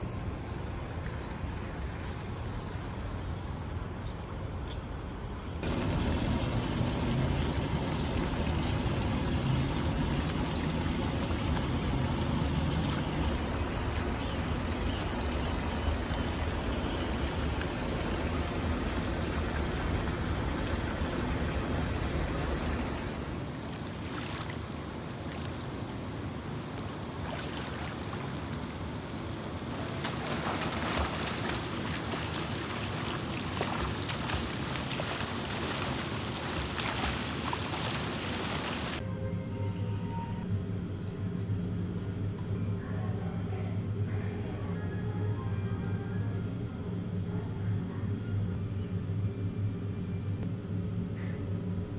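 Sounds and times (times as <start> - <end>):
pool water running and lapping: 5.6 - 39.0
water splashing: 5.6 - 39.0.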